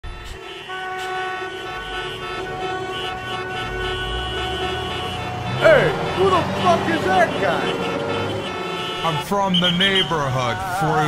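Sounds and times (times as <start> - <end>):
horn sounding steady chord: 0.0 - 11.0.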